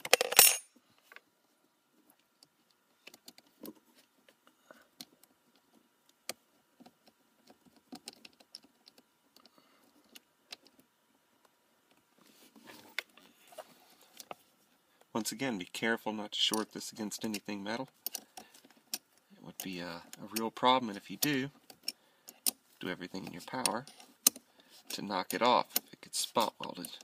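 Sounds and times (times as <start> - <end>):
metal hardware clattering: 0.0 - 0.7.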